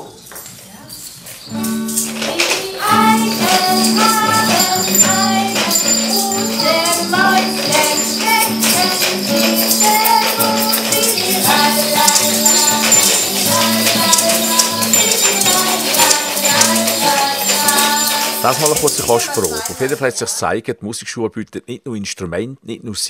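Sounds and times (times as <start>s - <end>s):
hand shakers rattling: 0.0s - 20.3s
women singing a children's song: 2.0s - 20.5s.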